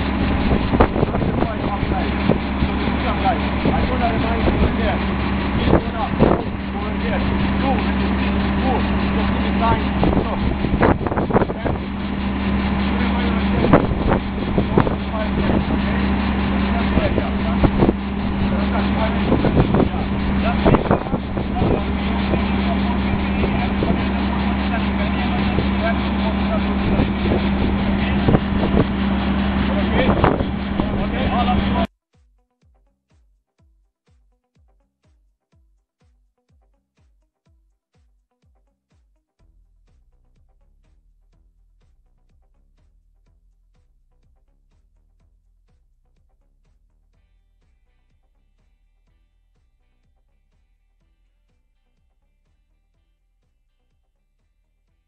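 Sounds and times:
engine idling: 0.0s - 31.9s
men talking: 0.0s - 31.9s.

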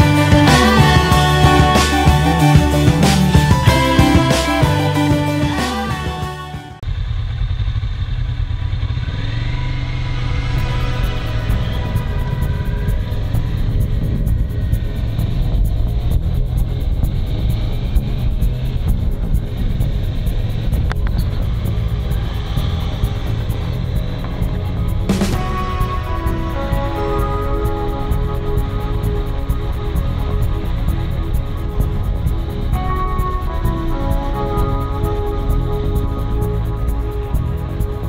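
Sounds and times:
motorcycle engine running: 0.0s - 38.0s
wind noise on microphone: 9.9s - 38.0s.

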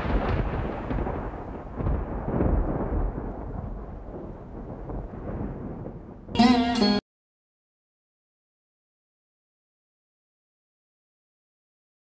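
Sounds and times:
deep rumble of thunder: 0.0s - 6.4s.

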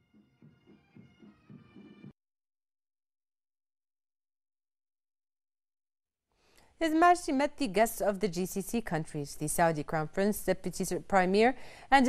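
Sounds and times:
faint bagpipe music: 0.0s - 2.1s.

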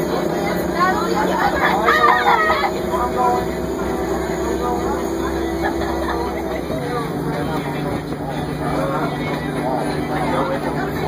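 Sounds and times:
bus engine rumble: 0.0s - 11.0s
steady whine: 0.0s - 11.0s
voices chattering: 0.0s - 11.0s.

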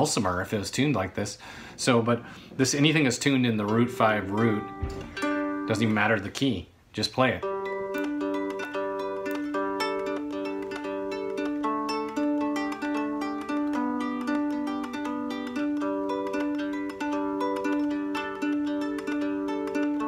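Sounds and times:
cigar box guitar plucked riff: 3.3s - 6.3s, 7.4s - 20.0s.

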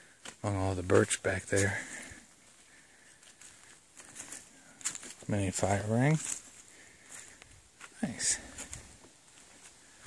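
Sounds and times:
footsteps crunching on dry leaves: 0.2s - 10.0s.

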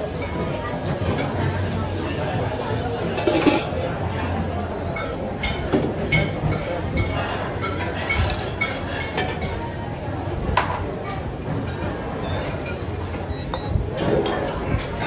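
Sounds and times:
pans and utensils clinking: 0.0s - 9.7s, 10.6s - 15.0s
murmur of voices: 0.0s - 15.0s.

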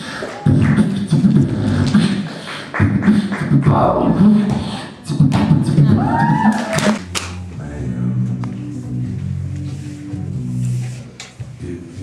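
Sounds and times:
beatboxing: 0.0s - 9.2s.

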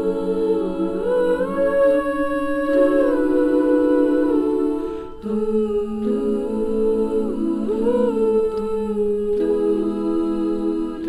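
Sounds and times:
girls choir humming chords: 0.0s - 11.0s.

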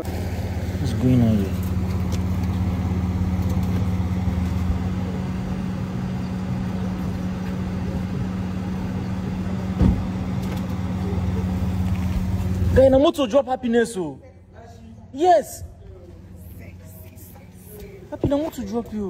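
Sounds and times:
car engine idling: 0.0s - 19.0s.

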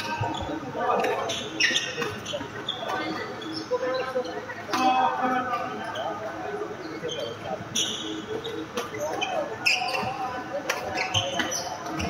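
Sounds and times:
shoes squeaking on wooden court: 0.0s - 4.4s, 6.8s - 12.0s.

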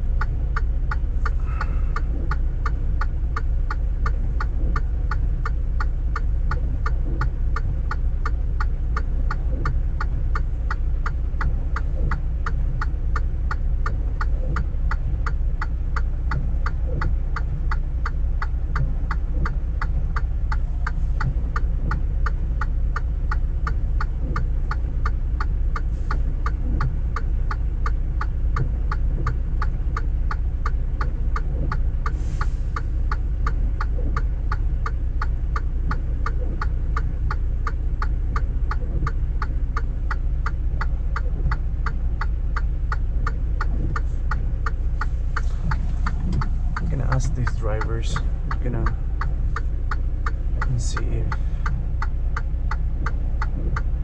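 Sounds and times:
diesel engine idling: 0.0s - 54.0s.

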